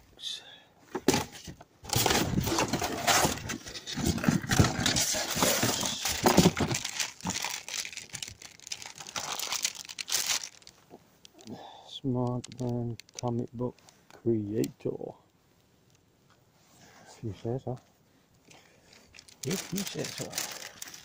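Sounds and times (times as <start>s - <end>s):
plastic bags rustling and crinkling: 1.3s - 11.5s, 18.6s - 21.0s.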